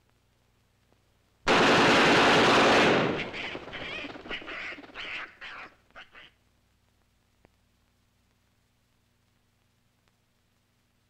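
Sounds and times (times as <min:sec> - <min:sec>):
combat noise blasts: 0:01.5 - 0:05.4.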